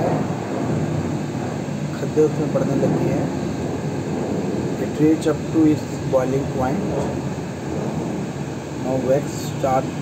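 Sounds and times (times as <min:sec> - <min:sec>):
water boiling in a pot: 0:00.0 - 0:10.0.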